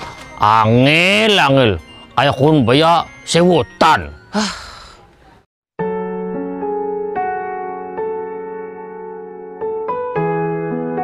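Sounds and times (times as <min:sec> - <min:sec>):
man sighing: 0:04.3 - 0:05.1
soft electric piano music: 0:05.8 - 0:11.0.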